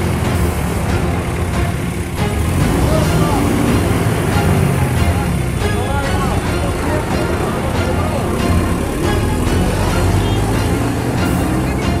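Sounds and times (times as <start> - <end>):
bus engine running: 0.0 - 12.0
music: 0.0 - 12.0
people's voices: 0.0 - 12.0.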